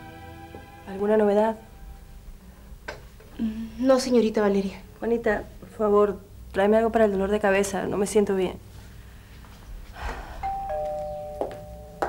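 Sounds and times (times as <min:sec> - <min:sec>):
two-tone doorbell chime: 0:10.4 - 0:12.0.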